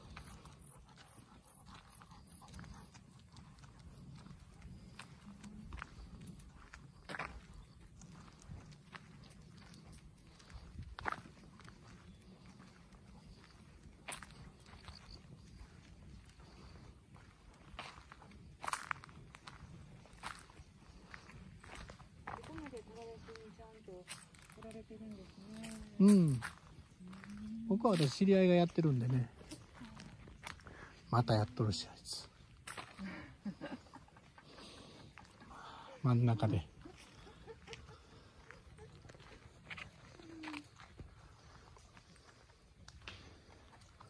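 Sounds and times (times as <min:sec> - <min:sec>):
footsteps on paved path: 0:00.0 - 0:44.0.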